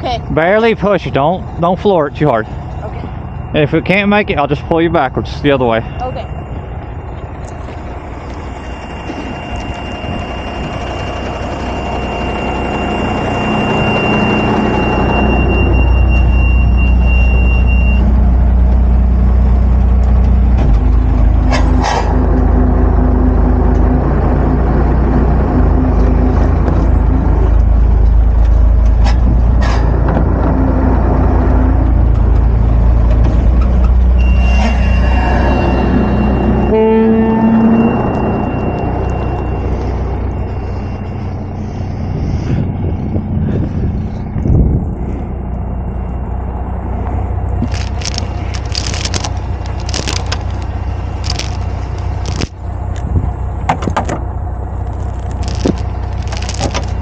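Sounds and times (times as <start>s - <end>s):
steady high whine: 0.0s - 53.6s
truck diesel engine under load: 0.0s - 57.0s
rising tone: 2.1s - 48.5s.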